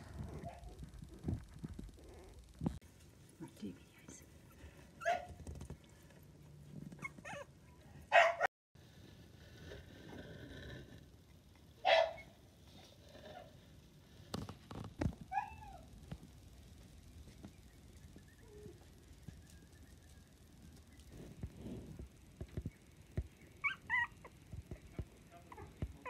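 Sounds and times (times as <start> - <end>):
puppies whimpering and squeaking: 6.9 - 7.9, 15.3 - 15.9, 23.6 - 24.4.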